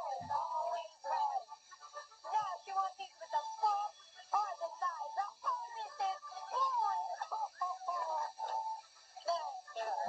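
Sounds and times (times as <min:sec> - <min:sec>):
children's voices through tv speaker: 0:00.0 - 0:10.0.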